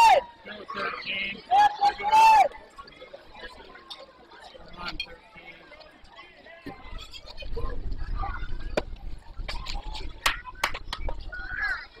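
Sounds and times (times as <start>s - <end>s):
background chatter: 0.0s - 12.0s
soft talk: 0.0s - 12.0s.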